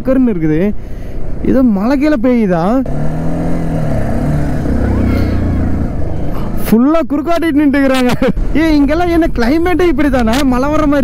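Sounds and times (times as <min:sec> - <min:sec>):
motorcycle engine running: 0:02.9 - 0:06.7.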